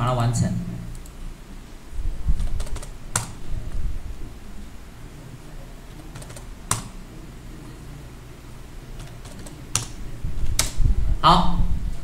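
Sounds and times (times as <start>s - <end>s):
keyboard typing: 2.4s - 3.4s, 5.9s - 7.0s, 9.0s - 10.8s.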